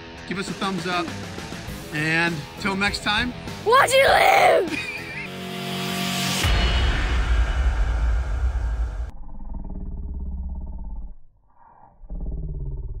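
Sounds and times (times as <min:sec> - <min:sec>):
deep boom with rumbling whoosh: 0:06.4 - 0:10.0
low pulsing growl: 0:08.6 - 0:13.0.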